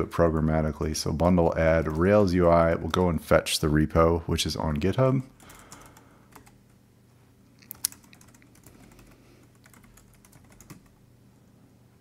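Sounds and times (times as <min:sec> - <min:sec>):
computer keyboard typing: 0:05.4 - 0:06.7, 0:07.7 - 0:11.0.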